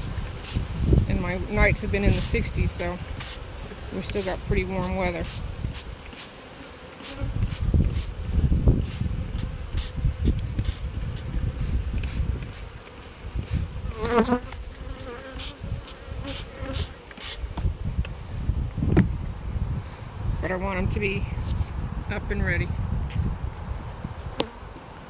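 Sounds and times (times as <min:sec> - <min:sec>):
honey bees buzzing: 0:00.0 - 0:17.7
bee flying past microphone: 0:02.1 - 0:17.7.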